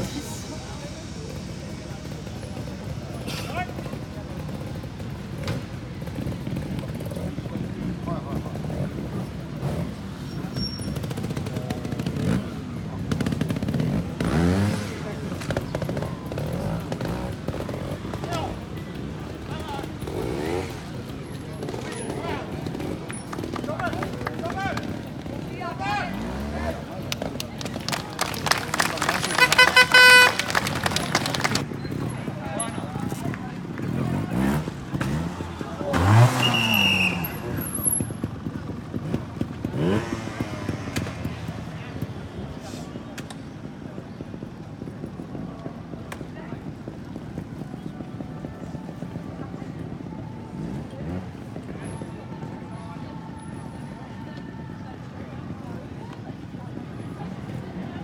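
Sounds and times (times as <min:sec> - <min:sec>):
motorcycle engines revving: 0:00.0 - 0:58.0
people's voices: 0:00.0 - 0:58.0.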